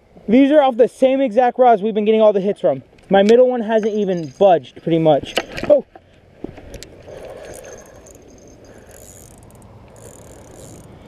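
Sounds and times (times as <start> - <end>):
soft mechanical rattle: 6.6 - 11.0
fishing reel clicks: 7.1 - 11.0.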